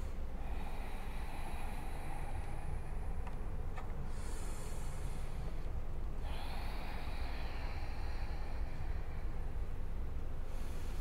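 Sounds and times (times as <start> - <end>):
hissing yoga breathing: 0.0 - 11.0
steady low rumble: 0.0 - 11.0.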